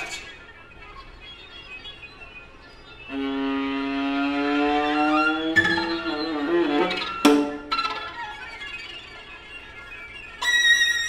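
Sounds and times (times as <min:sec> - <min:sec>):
string quartet playing: 0:03.1 - 0:07.7
bowed note sliding upward: 0:03.1 - 0:07.8
sharp accented string attack: 0:04.0 - 0:07.8.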